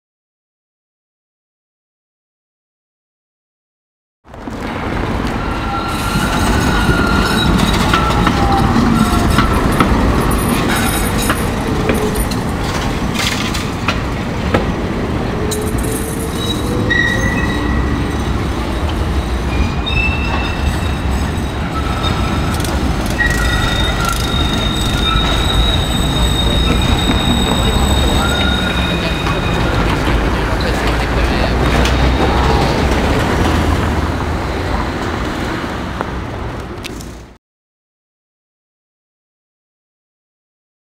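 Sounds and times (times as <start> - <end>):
tram rumbling on rails: 4.3 - 37.4
wheels squealing: 4.4 - 37.3.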